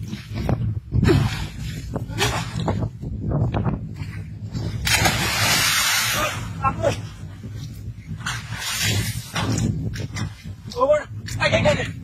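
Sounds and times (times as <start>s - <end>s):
water splashing and sloshing: 0.0s - 12.0s.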